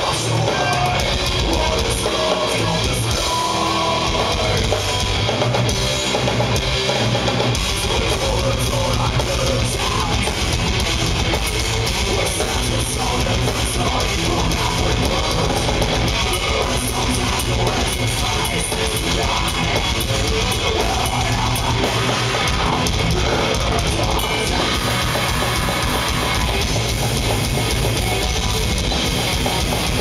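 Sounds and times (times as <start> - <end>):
distorted electric guitars: 0.0 - 30.0
drum kit: 0.0 - 30.0
metal band playing live: 0.0 - 30.0.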